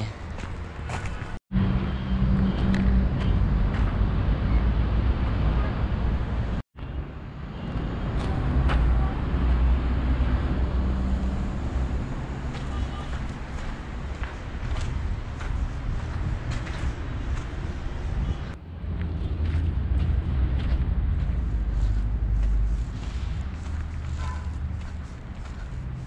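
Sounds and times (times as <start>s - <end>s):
road traffic rumble: 0.0s - 26.0s
wind buffeting microphone: 10.4s - 26.0s.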